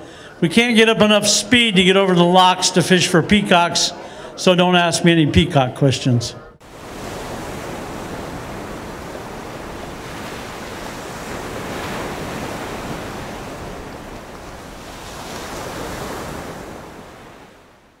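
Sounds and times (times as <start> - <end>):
ocean waves and surf: 6.6 - 18.0.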